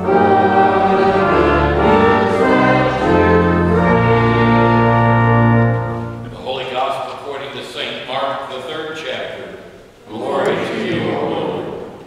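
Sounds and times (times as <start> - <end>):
congregation singing: 0.0 - 6.3, 10.0 - 12.0
organ chords: 0.0 - 7.8.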